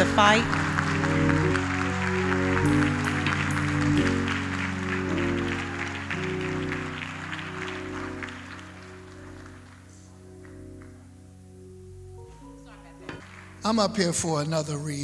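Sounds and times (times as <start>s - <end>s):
audience applauding: 0.0s - 11.0s, 13.2s - 14.5s
held instrumental chords: 0.0s - 14.5s.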